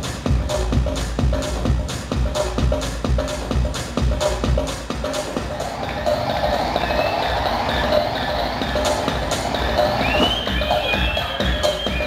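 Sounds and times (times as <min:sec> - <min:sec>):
loud electronic dance music: 0:00.0 - 0:12.0.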